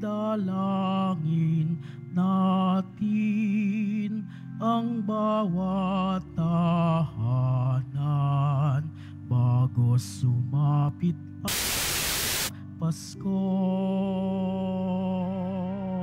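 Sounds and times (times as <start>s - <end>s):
person singing a hymn: 0.0s - 11.8s, 12.5s - 16.0s
loud static hiss: 11.5s - 12.5s.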